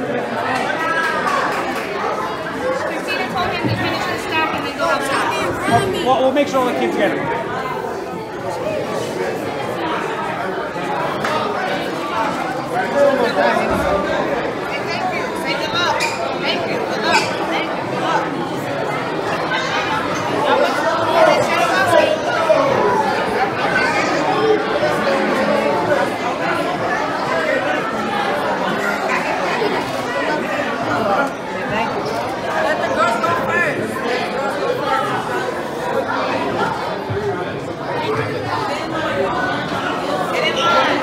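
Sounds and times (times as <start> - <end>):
overlapping voices chatter: 0.0 - 41.0.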